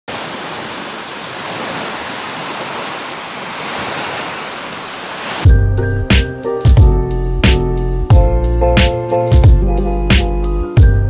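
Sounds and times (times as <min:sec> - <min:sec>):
small waves washing on shore: 0:00.0 - 0:05.5
music with heavy bass: 0:05.5 - 0:11.0.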